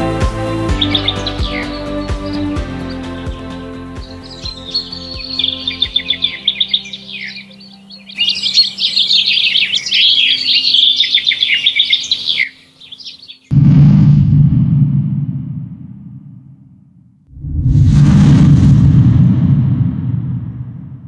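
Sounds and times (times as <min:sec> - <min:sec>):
soft background music: 0:00.0 - 0:13.0
songbirds warbling: 0:00.0 - 0:13.5
low whoosh: 0:13.5 - 0:21.0.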